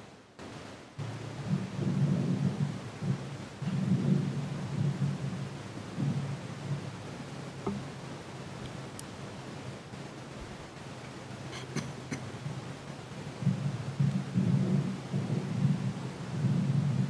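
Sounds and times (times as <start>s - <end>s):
low uneven rumble: 0.0s - 17.0s.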